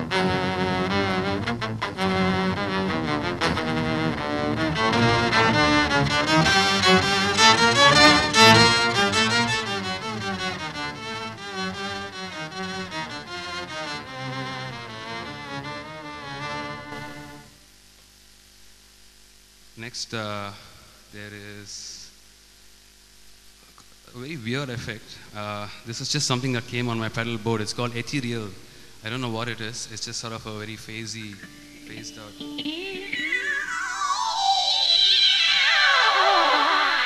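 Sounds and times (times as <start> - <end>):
electric violin with effects: 0.0 - 17.6, 26.3 - 37.0.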